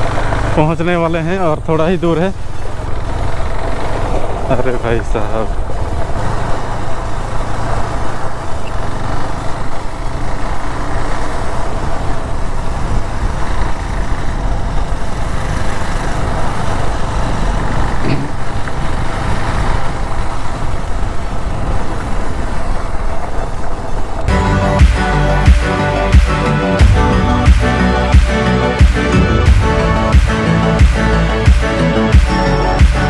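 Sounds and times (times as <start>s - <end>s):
motorcycle engine cruising: 0.0s - 33.0s
background music with beat: 24.3s - 33.0s.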